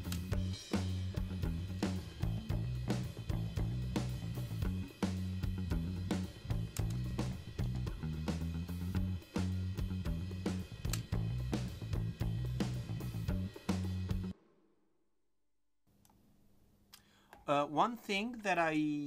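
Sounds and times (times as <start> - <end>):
bass line: 0.0 - 14.3
drum kit beat: 0.0 - 14.4.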